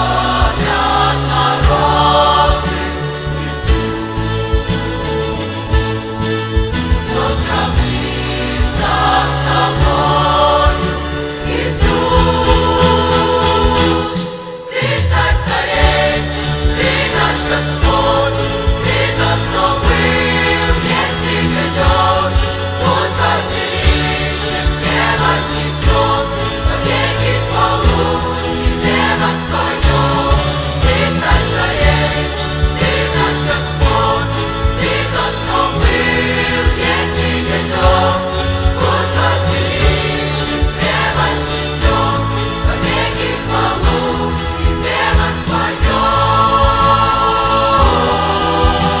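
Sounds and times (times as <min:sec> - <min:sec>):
choir singing worship song: 0:00.0 - 0:49.0
strings: 0:00.0 - 0:49.0.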